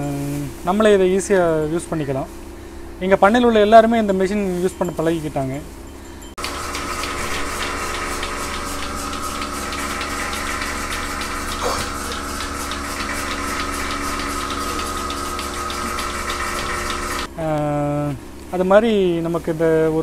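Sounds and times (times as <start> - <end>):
milking machine hum: 0.0 - 17.3
pulsator clicking: 6.4 - 17.3.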